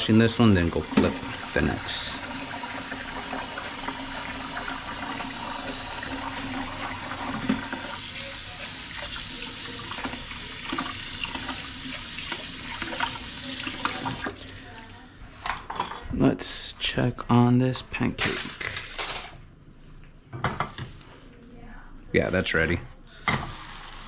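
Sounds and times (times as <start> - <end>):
faucet running into steel sink: 0.0 - 15.0
dish brush scrubbing bowl: 0.1 - 14.4.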